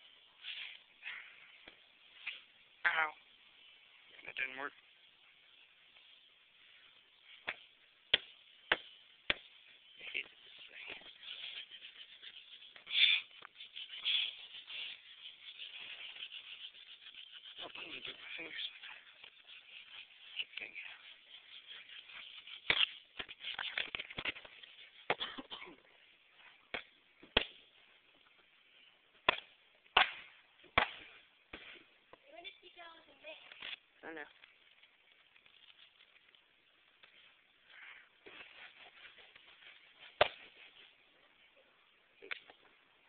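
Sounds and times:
skateboard deck cracking: 22.2s - 25.2s.

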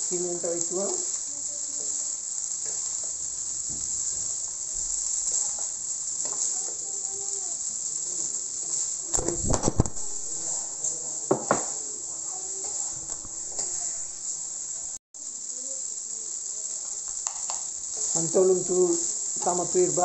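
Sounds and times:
food sizzling in a wok: 0.0s - 20.0s
metal spatula scraping a pan: 2.6s - 6.8s, 12.3s - 14.4s.

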